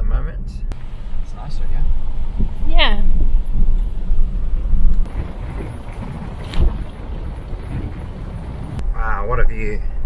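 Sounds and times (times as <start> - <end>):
tyres rumbling on dirt road: 0.8 - 9.8
wind buffeting microphone: 1.8 - 9.7.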